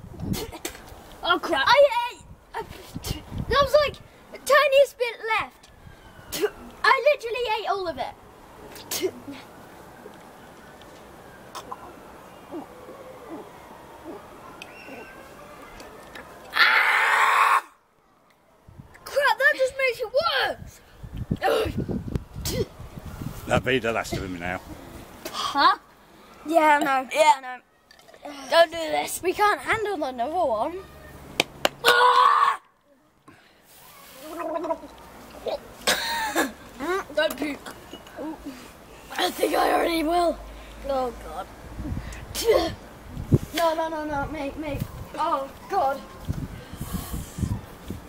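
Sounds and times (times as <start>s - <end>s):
boy retching: 11.5s - 11.9s, 22.4s - 22.7s, 34.2s - 39.9s, 41.9s - 42.8s
boy groaning: 21.4s - 21.8s, 42.3s - 42.8s
breath: 33.2s - 33.8s, 40.5s - 40.9s, 46.5s - 47.6s
breathy rush of hard blowing: 46.5s - 48.0s.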